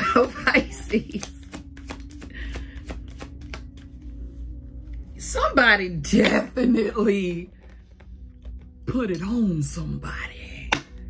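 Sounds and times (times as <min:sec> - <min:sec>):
cards being shuffled: 0:00.1 - 0:04.2.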